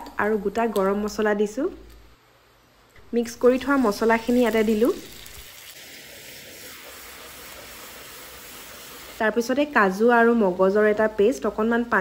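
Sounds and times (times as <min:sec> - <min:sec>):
woman talking: 0:00.0 - 0:01.8, 0:03.1 - 0:05.1, 0:09.2 - 0:12.0
spices sizzling in hot oil: 0:03.0 - 0:12.0.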